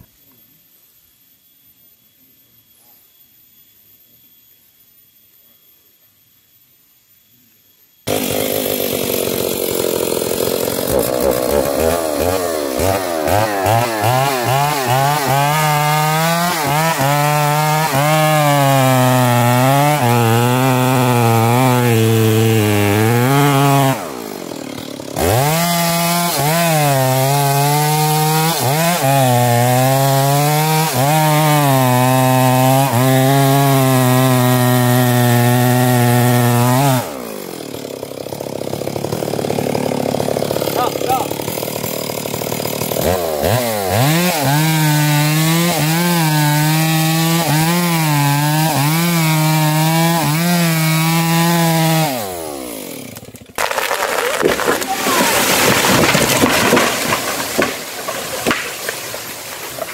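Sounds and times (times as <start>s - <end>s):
chainsaw cutting tree trunk: 8.1s - 59.9s.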